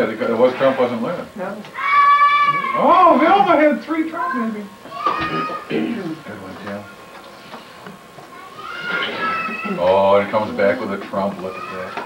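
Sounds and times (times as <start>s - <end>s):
person clearing throat: 5.7s - 6.2s.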